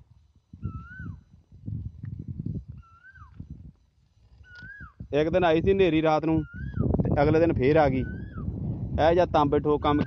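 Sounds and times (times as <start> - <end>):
animal's high whistled call: 0.6 - 1.2, 2.8 - 3.4, 4.4 - 5.0, 6.4 - 6.9, 8.0 - 8.5.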